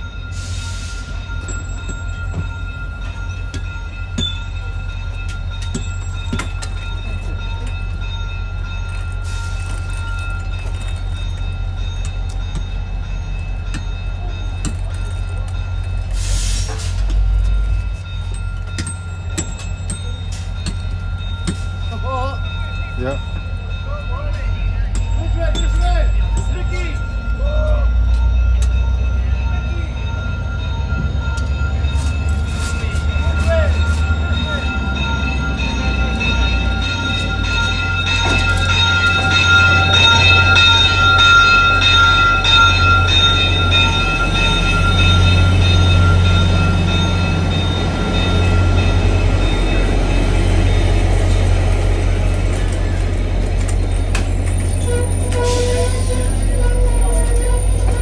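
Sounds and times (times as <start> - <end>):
diesel locomotive engine drone: 0.0 - 58.0
locomotive bell ringing: 0.0 - 58.0.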